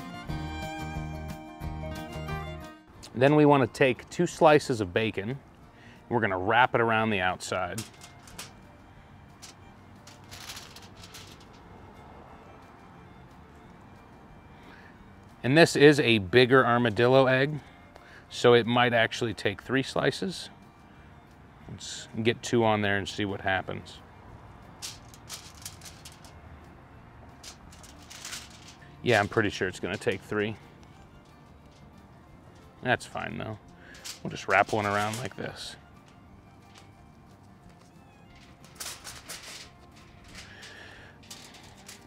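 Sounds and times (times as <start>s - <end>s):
quiet background music: 0.0s - 42.0s
rustles and clicks handling food: 7.4s - 8.6s, 9.3s - 11.7s, 24.8s - 26.4s, 27.3s - 42.0s.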